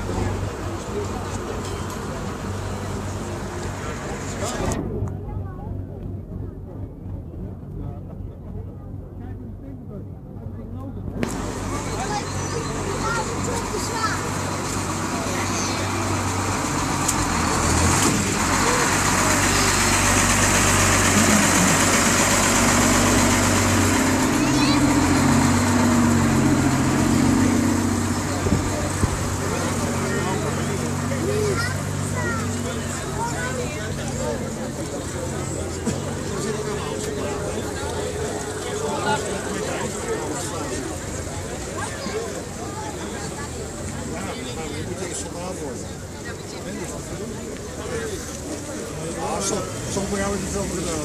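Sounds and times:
crowd voices: 0.0 - 51.0
vehicle engines running: 0.0 - 51.0.

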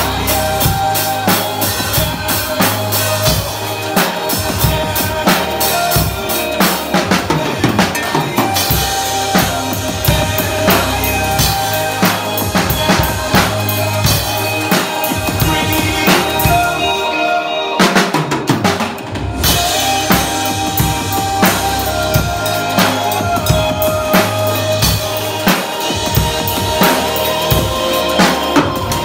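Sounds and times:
backing song with bass: 0.0 - 29.0
drum kit playing a beat: 0.0 - 29.0.

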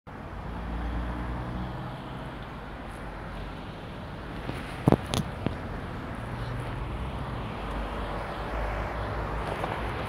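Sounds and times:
vehicle engine humming: 0.1 - 10.0.

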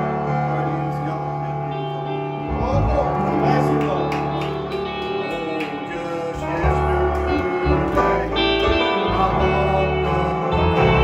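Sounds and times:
long low bass notes: 0.0 - 5.3, 6.0 - 11.0
electric guitar playing: 0.0 - 11.0.

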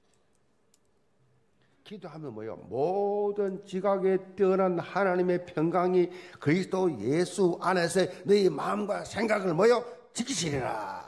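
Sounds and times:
man speaking: 1.8 - 11.0.

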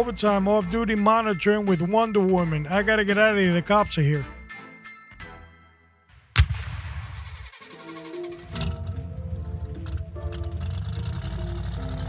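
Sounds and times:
loud bang: 6.2 - 7.7.

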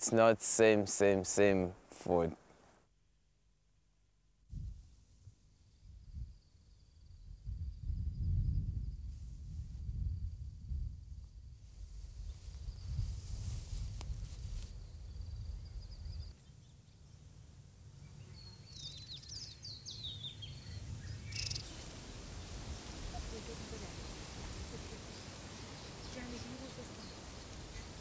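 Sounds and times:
low wind rumble: 5.8 - 16.3, 20.0 - 28.0
bird chirping: 18.0 - 21.8, 24.0 - 28.0
even hiss: 20.1 - 28.0.

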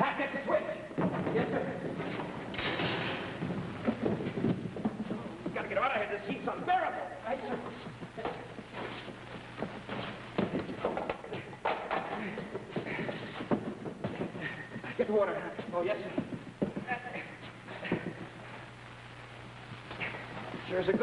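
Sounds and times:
shuffling footfalls: 0.5 - 21.0.

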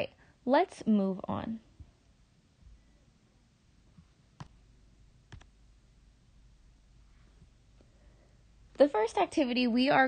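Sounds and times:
computer mouse clicks: 4.0 - 4.6, 5.3 - 5.5.

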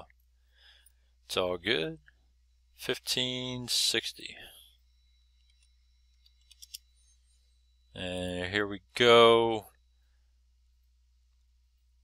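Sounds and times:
low hum: 0.0 - 12.0
computer keys clicking: 5.4 - 6.8.

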